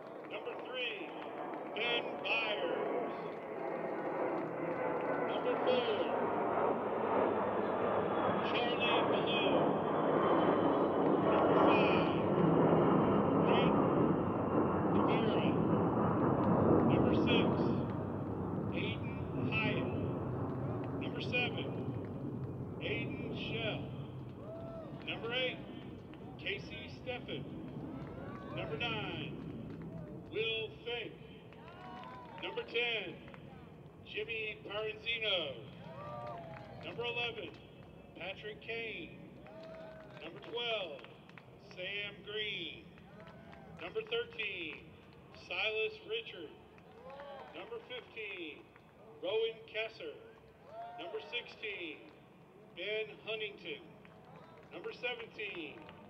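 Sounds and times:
aircraft passing overhead: 0.0 - 56.0.

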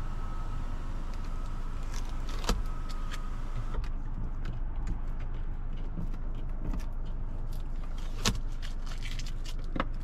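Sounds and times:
steady low hum: 0.0 - 7.9
sharp clicks and taps in car: 0.0 - 8.6.

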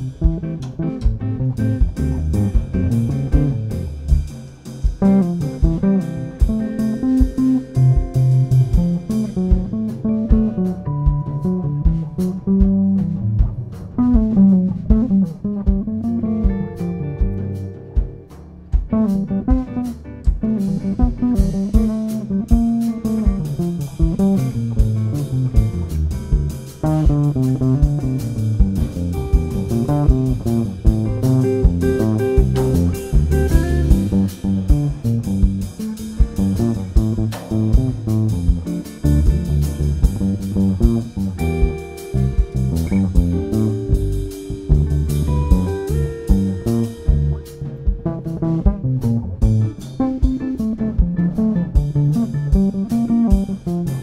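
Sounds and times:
electric bass guitar line: 0.0 - 54.0
jazz band playing: 0.0 - 54.0
cymbals: 16.0 - 54.0.

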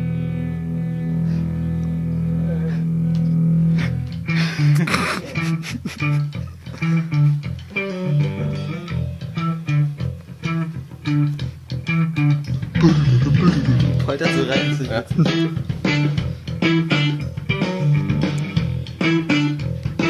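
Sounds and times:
rock band music: 0.0 - 20.0.

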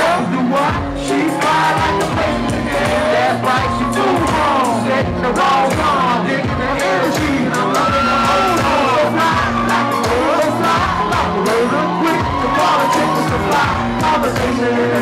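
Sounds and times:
crowd whooping: 0.0 - 15.0
live hip-hop music: 0.0 - 15.0
person singing into a microphone: 0.0 - 15.0.

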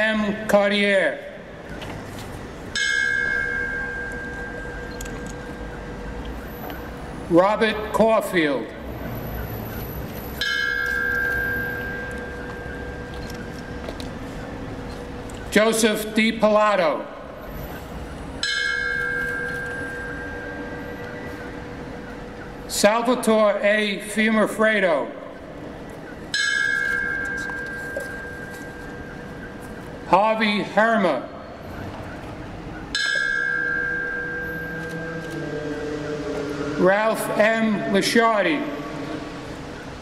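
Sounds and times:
bell ringing: 32.9 - 40.0.

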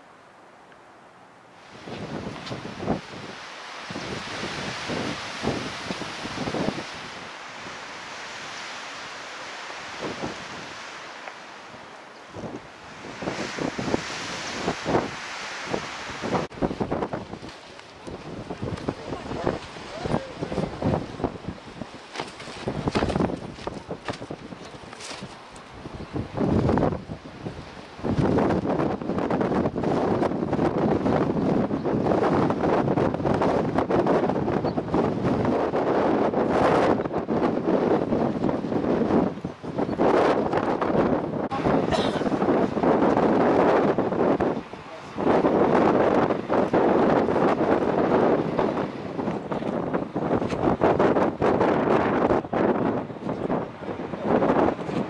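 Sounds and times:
wind buffeting microphone: 1.6 - 11.1, 11.7 - 55.0.

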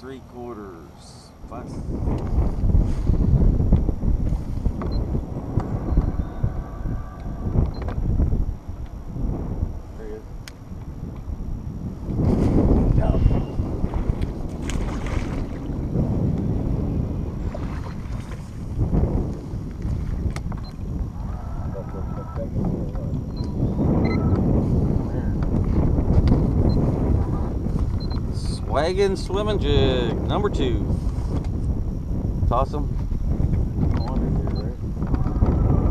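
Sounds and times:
wind buffeting microphone: 0.2 - 35.9
faint voices: 21.2 - 23.3.

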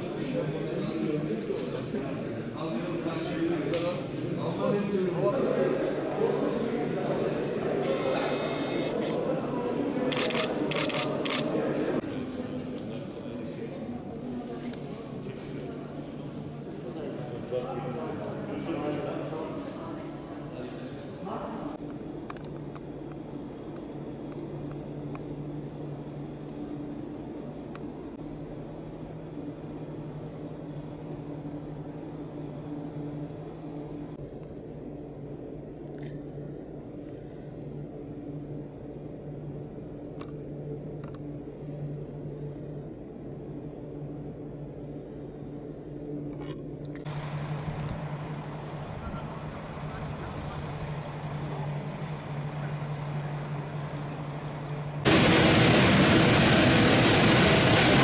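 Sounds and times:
low mechanical hum: 0.0 - 58.0.

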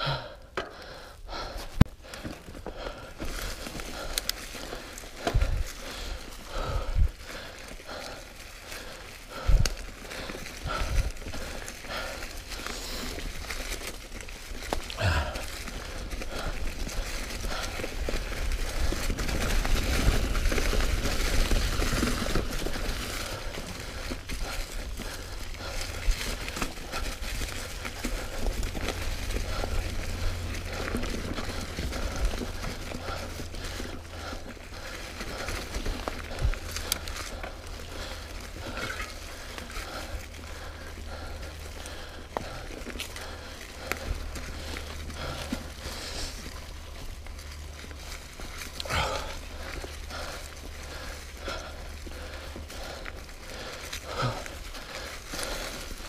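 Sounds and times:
bike knocking and rattling: 0.0 - 56.0
bike tyres crunching dry leaves: 0.0 - 56.0.

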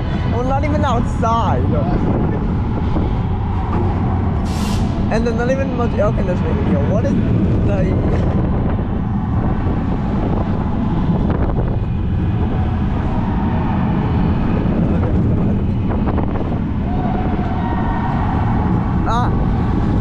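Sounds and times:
roller coaster wheels rumbling: 0.0 - 20.0
wind buffeting microphone: 0.0 - 20.0.

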